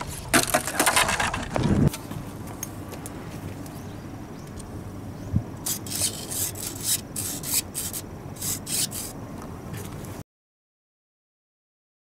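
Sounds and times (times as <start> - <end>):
low wind rumble: 0.0 - 6.7.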